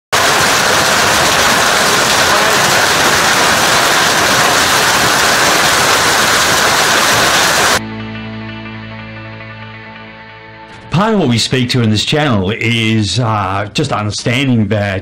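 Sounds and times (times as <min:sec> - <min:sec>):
heavy hail pelting down: 0:00.1 - 0:07.8
music with sustained notes: 0:07.8 - 0:11.4.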